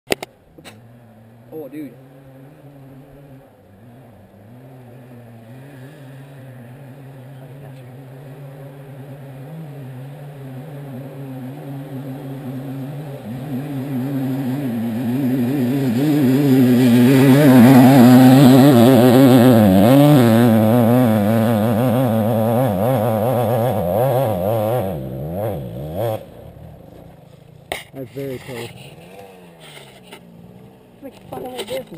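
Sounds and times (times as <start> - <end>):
dirt bike engine revving: 0.6 - 31.9.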